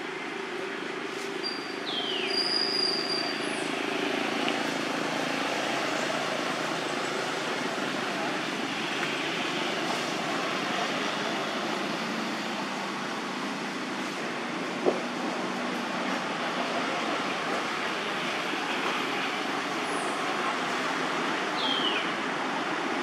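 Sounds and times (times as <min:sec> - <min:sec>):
outdoor background noise: 0:00.0 - 0:23.0.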